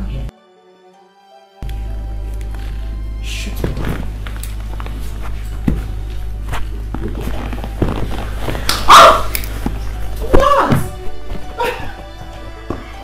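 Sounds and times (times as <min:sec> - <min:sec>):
background music with low drone: 0:00.0 - 0:13.0
knocks and taps on leather sofa: 0:03.6 - 0:08.7
woman crying out: 0:08.8 - 0:09.4, 0:10.2 - 0:12.1.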